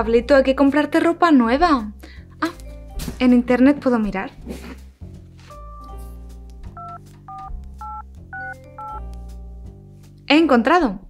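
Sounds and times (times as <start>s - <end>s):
phone keypad beeps: 6.8s - 9.0s.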